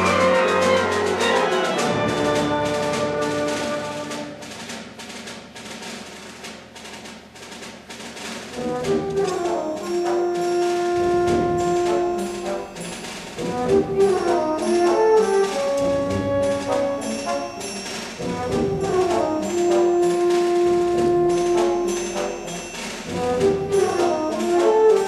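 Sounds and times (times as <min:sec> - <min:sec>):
brass held chords: 0:00.0 - 0:04.4, 0:08.6 - 0:25.0
percussion strokes: 0:00.0 - 0:25.0
school band playing: 0:00.0 - 0:25.0.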